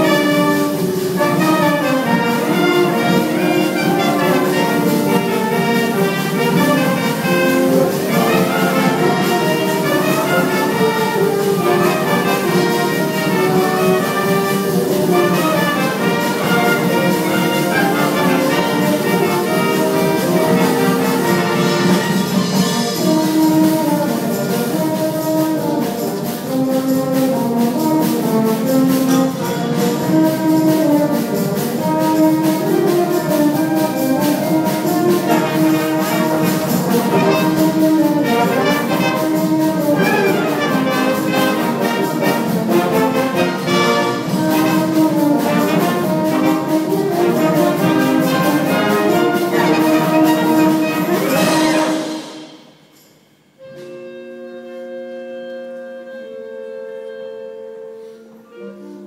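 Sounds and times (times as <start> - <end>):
concert band playing: 0.0 - 52.9.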